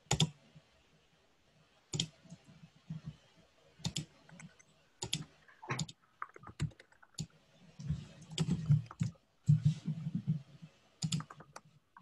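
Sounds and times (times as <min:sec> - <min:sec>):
computer mouse clicks: 0:00.1 - 0:00.4, 0:01.9 - 0:02.4, 0:03.8 - 0:09.1, 0:11.0 - 0:12.0.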